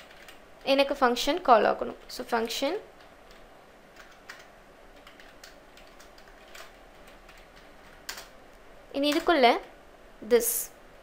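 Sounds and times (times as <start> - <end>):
computer keyboard key clicks: 4.0 - 8.3.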